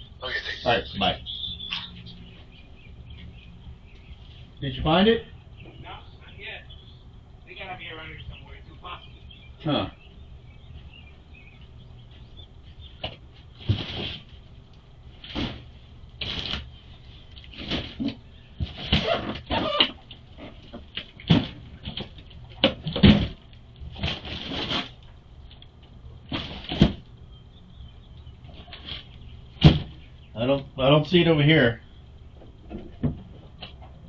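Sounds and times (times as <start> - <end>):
knocks and clunks of objects moved: 13.0 - 14.5, 15.2 - 25.2, 26.2 - 27.1, 28.4 - 30.1, 32.3 - 34.0.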